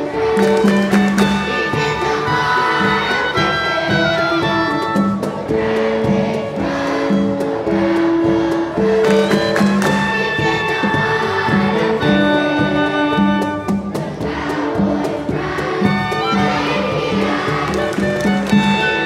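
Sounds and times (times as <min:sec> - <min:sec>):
string orchestra playing: 0:00.0 - 0:19.0
woodwind quintet playing: 0:01.4 - 0:05.2, 0:09.1 - 0:14.0.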